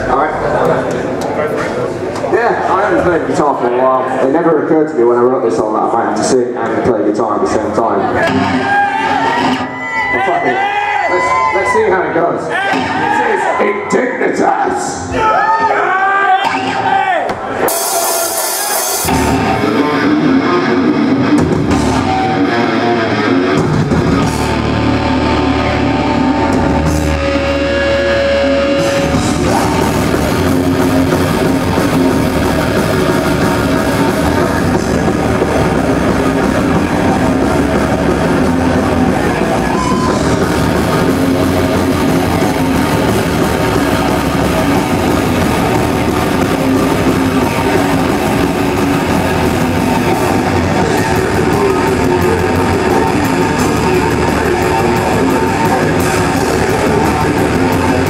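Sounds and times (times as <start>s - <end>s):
bass guitar: 0.0s - 11.6s, 16.4s - 58.0s
distorted electric guitars: 0.0s - 15.2s, 16.4s - 58.0s
drum kit: 8.2s - 9.8s, 12.5s - 13.3s, 16.4s - 58.0s.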